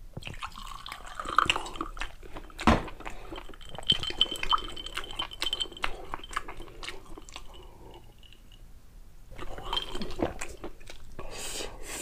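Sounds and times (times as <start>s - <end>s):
liquid pouring into a glass: 0.2s - 2.0s, 3.4s - 6.4s, 9.4s - 10.6s.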